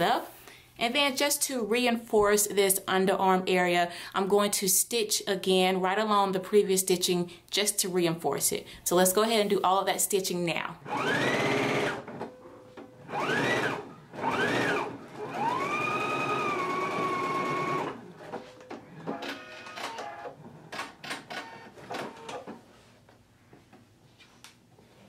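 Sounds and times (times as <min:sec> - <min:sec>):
sewing machine motor whining: 0:10.8 - 0:12.3, 0:12.9 - 0:22.5.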